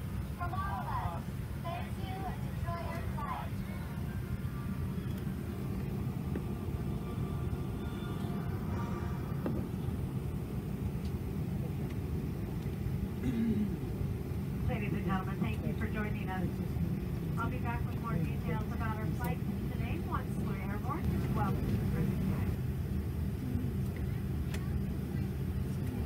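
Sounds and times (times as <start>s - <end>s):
airplane cabin rumble: 0.0s - 26.0s
indistinct voices talking: 0.4s - 6.2s.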